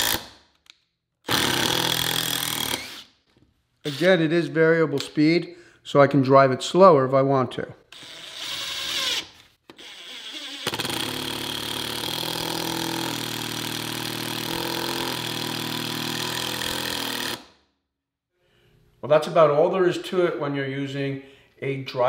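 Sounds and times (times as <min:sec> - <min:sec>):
impact driver driving a screw: 0:07.9 - 0:17.5.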